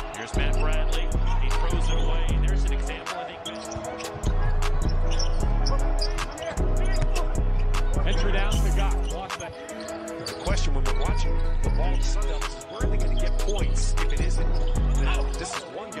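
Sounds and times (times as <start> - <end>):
faint commentary: 0.0 - 16.0
hip-hop beat with heavy bass: 0.0 - 16.0.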